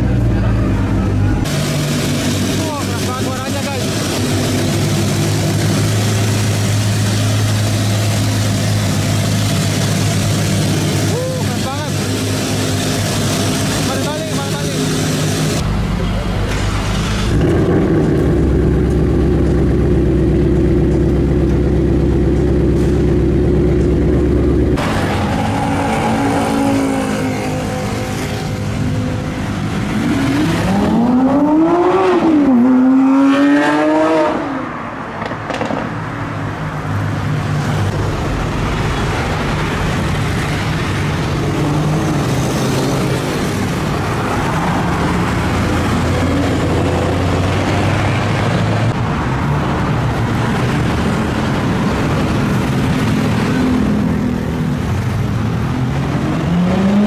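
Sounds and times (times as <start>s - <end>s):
car engines idling: 0.0s - 31.0s, 36.3s - 56.5s
engine revving: 16.5s - 36.0s, 39.9s - 57.0s.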